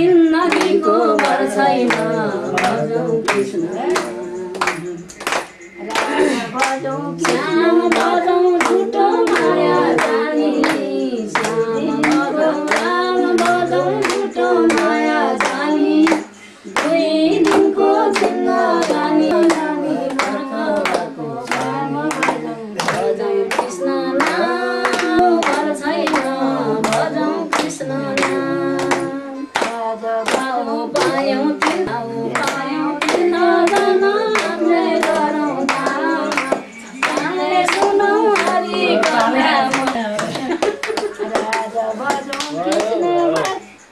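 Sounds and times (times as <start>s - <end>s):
people singing together: 0.0s - 43.9s
hands clapping in time: 0.1s - 43.9s.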